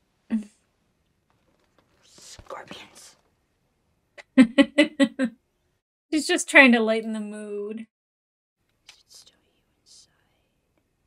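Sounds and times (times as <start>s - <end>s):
faint whispered speech: 2.0s - 3.2s, 8.9s - 10.6s.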